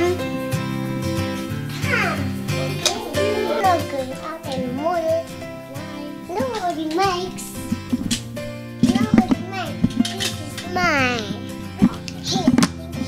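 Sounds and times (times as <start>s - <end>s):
background music with held tones: 0.0s - 13.0s
young child calling and babbling: 1.7s - 7.5s, 8.8s - 13.0s.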